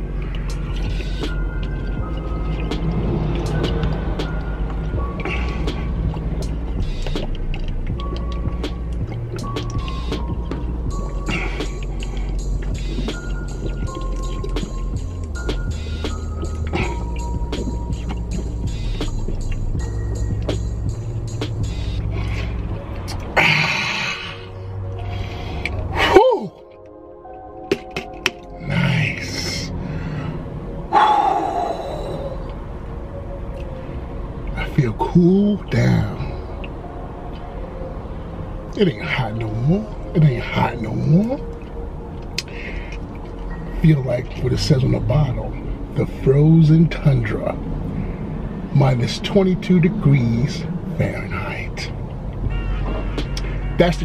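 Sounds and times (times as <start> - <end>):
hip-hop beat: 0.0 - 29.8, 48.8 - 54.0.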